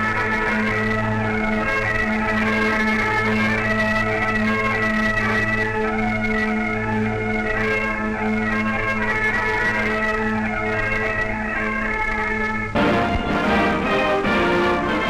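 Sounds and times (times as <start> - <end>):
bagpipe band playing: 0.0 - 15.0.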